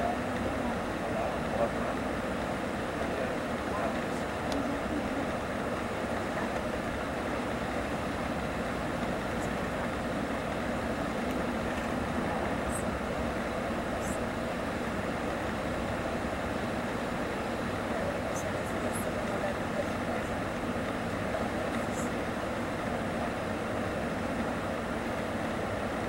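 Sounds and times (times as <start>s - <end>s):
engine and drivetrain hum: 0.0s - 26.0s.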